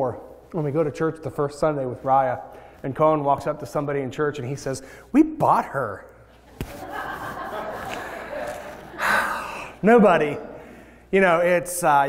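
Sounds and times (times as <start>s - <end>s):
audience laughing softly: 6.5s - 9.5s.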